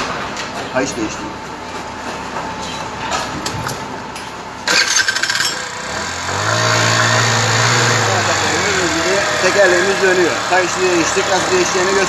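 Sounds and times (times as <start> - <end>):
scooter engine cranking: 4.6 - 12.0
scooter engine idling: 4.7 - 12.0.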